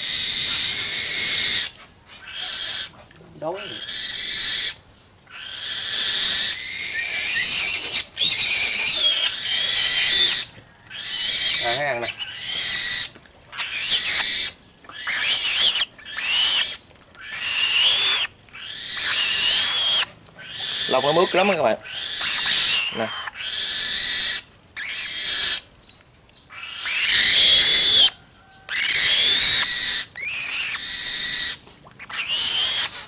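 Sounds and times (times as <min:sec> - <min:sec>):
bird of prey calling harshly: 0:00.0 - 0:25.6, 0:26.5 - 0:33.0.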